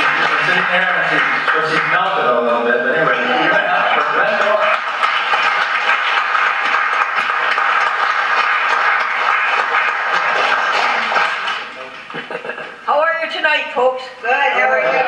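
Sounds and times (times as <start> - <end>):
audience applauding: 0.0 - 12.6.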